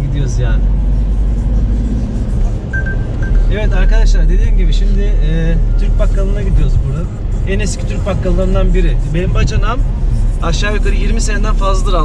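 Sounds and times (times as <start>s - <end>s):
car driving rumble: 0.0s - 12.0s.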